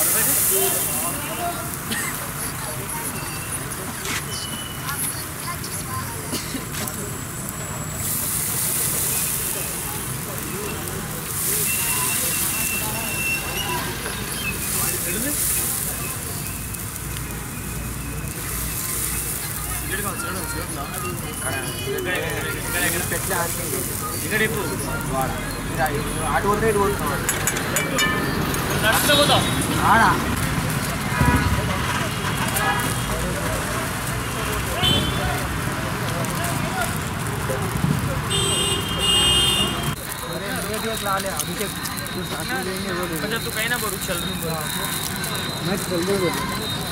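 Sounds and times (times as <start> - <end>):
gas burner flame hissing: 0.0 - 46.9
low street roar: 0.0 - 46.9
people talking: 0.0 - 46.9
voices chattering: 0.0 - 46.9
high-pitched beep: 27.2 - 29.0.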